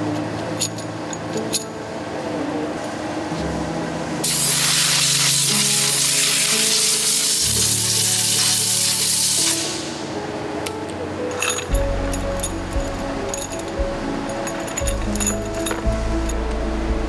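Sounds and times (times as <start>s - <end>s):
spray gun hissing: 4.3s - 9.8s.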